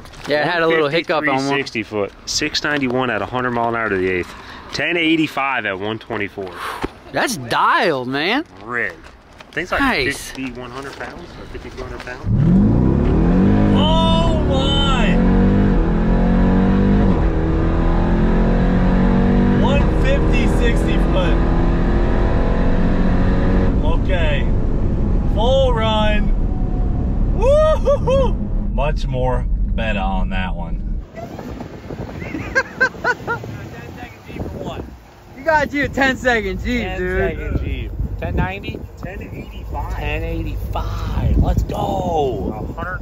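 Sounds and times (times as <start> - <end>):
car engine revving: 11.8 - 31.1, 35.0 - 43.0.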